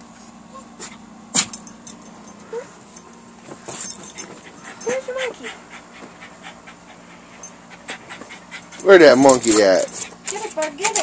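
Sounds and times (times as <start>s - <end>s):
dog panting: 3.8s - 11.0s.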